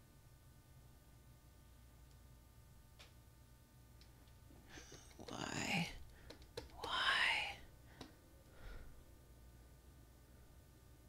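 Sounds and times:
woman whispering: 4.8 - 6.0, 6.7 - 7.7.

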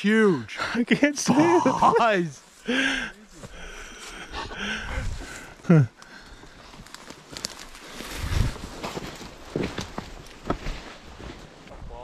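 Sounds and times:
footsteps through undergrowth: 5.0 - 12.0
twigs snapping: 5.9 - 10.7.

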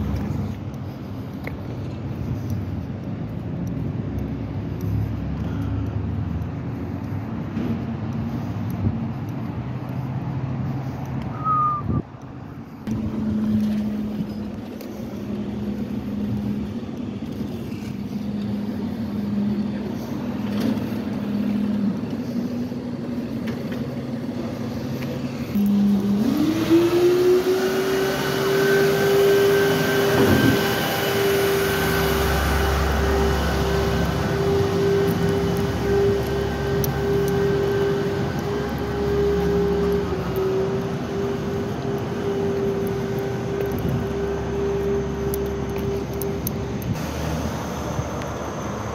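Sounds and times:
truck mechanical whine: 10.4 - 48.9
low rumble: 11.3 - 23.4.

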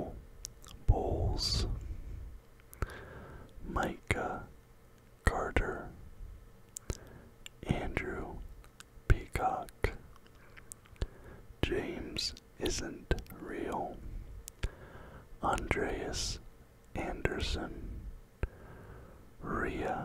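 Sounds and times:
man whispering: 0.0 - 2.2, 2.8 - 4.5, 5.2 - 6.1, 6.8 - 18.6, 19.4 - 20.0
mouth clicks: 6.7 - 7.7, 8.4 - 9.0.

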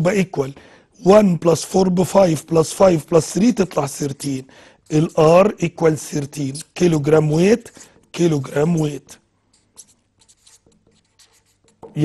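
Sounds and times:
marker pen writing: 2.7 - 12.0.

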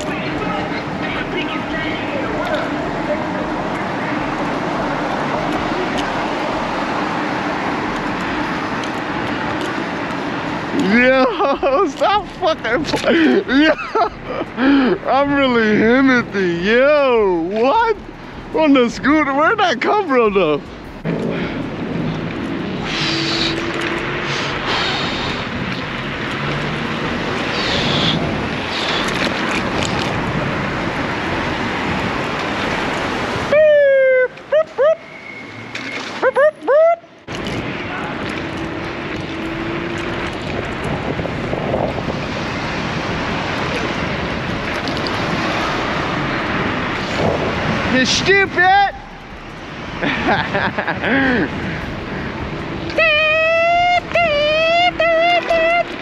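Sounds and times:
road noise: 0.0 - 56.0
person speaking: 10.7 - 13.7, 14.6 - 20.7, 47.8 - 49.1, 52.8 - 56.0
wind rush on microphone: 21.0 - 33.6, 37.3 - 48.4, 49.0 - 53.4.

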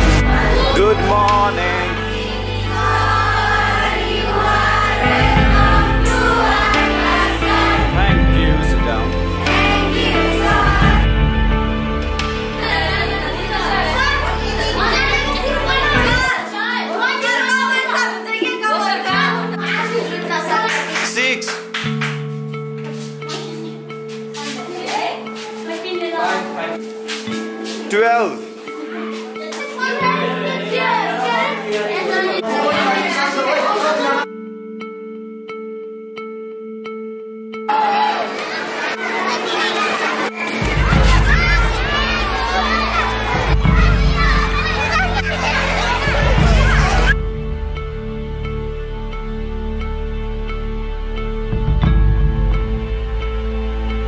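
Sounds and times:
children talking: 0.0 - 21.1, 22.9 - 34.3, 37.7 - 47.4
background music: 0.0 - 54.0.

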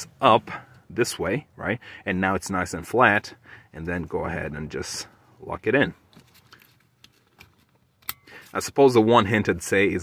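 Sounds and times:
seat belt webbing and buckle clicks: 6.0 - 8.6.

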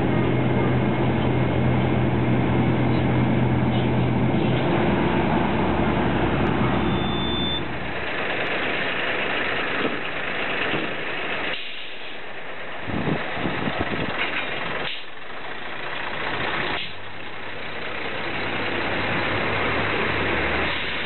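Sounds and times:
railcar engine humming: 0.0 - 21.0
train mechanical noise: 0.0 - 21.0.

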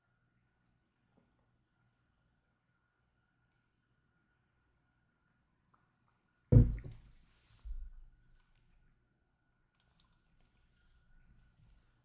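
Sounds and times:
faint clicks: 9.7 - 11.6.

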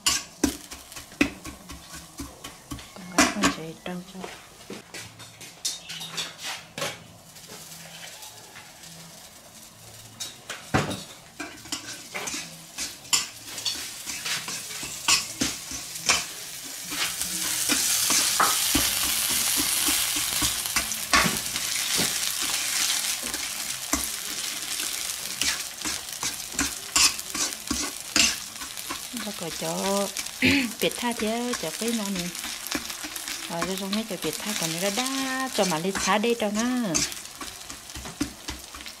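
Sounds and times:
food sizzling in oil: 0.0 - 4.8, 5.6 - 39.0
metal ladle scraping a wok: 11.4 - 30.4, 31.0 - 38.8.

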